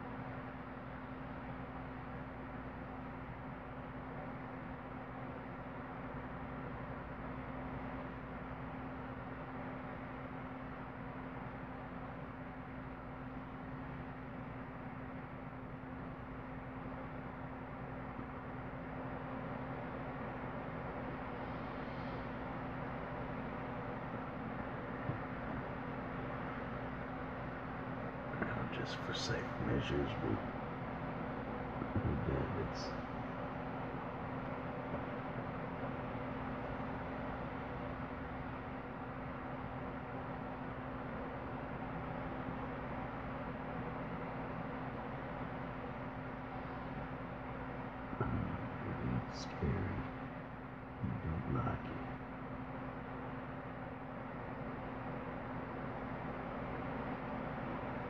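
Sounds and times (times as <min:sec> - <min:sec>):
low steady hum: 0:00.0 - 0:58.0.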